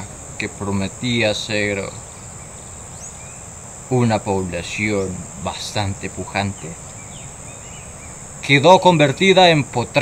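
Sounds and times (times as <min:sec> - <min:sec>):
faint rising chirp: 0:00.0 - 0:09.2
high-pitched insect chorus: 0:00.0 - 0:10.0.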